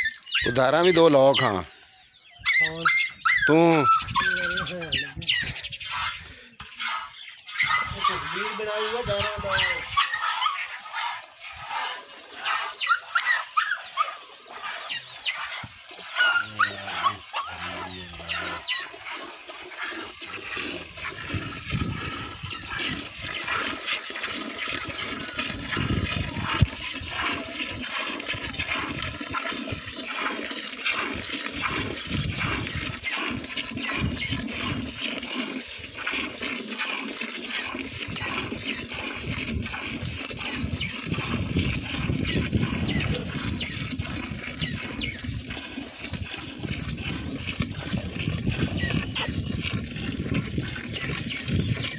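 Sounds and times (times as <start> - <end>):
milk squirting into steel pail: 5.8 - 51.9.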